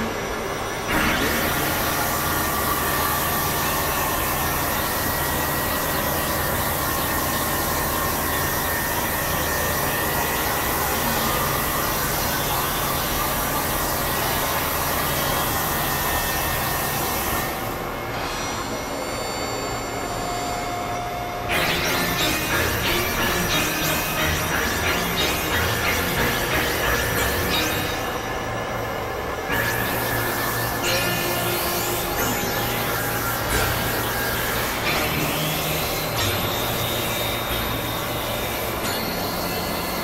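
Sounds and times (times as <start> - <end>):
synthesizer noise drone: 0.0 - 40.0
steady high tones: 17.6 - 40.0.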